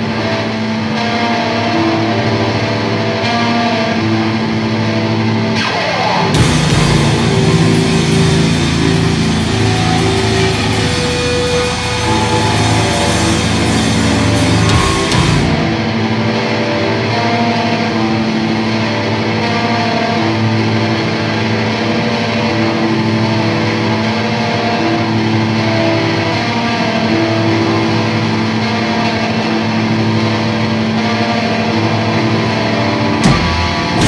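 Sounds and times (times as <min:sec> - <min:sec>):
bass guitar droning: 0:00.0 - 0:34.0
distorted electric guitar: 0:00.0 - 0:34.0.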